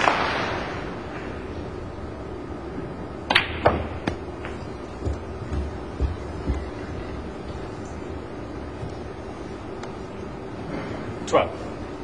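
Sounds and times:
cue striking ball: 3.3 - 7.2.

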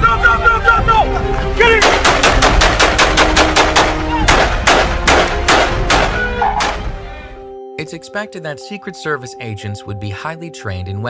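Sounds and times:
background music: 0.0 - 11.0
pistol shots: 1.8 - 6.8.

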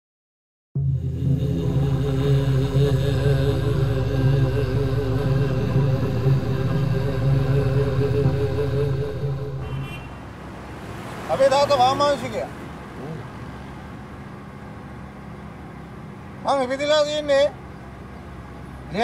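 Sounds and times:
drone of low tones: 0.8 - 10.4.

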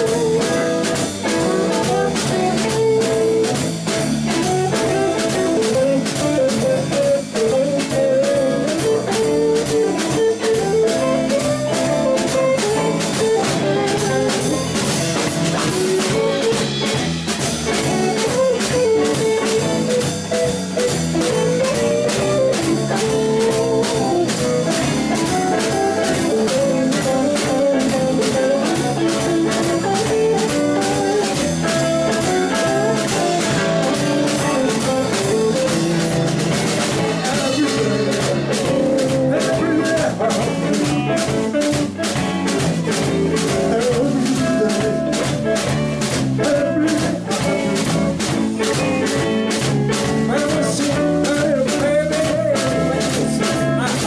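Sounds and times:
drum kit steady beat: 0.0 - 54.0
electric guitars playing: 0.0 - 54.0.

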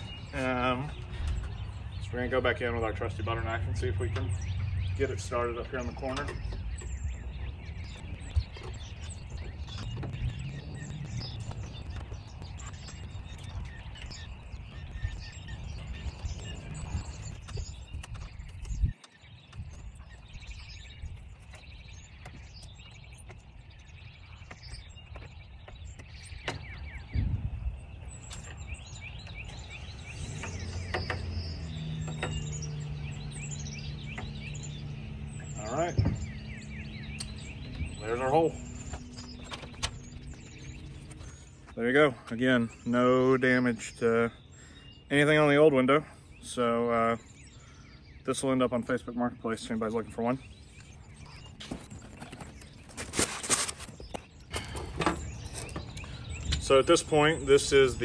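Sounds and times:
low outdoor rumble: 0.0 - 19.0
birds chirping: 0.0 - 58.0.

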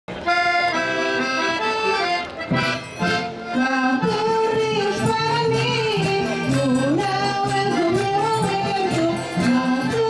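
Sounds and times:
accordions playing folk dance tune: 0.1 - 10.0.

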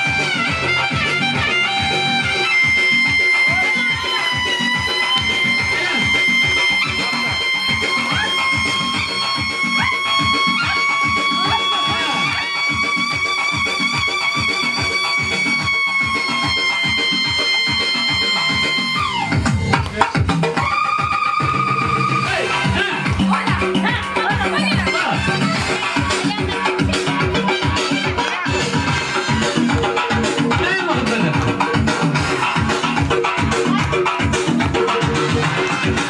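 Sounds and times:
upbeat dance music: 0.0 - 36.0.

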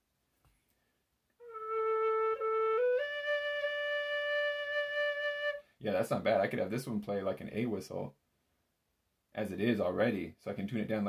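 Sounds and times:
tin whistle notes: 1.4 - 5.6.

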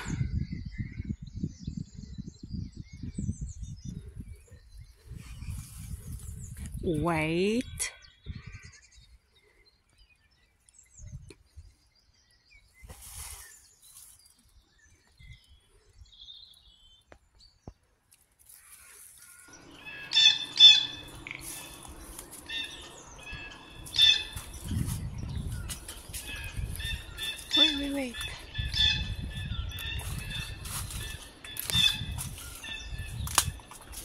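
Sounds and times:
songbirds singing: 0.0 - 34.0.

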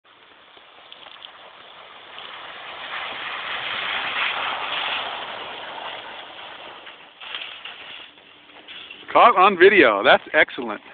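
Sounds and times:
tyres rushing on snow and ice: 0.1 - 10.9.

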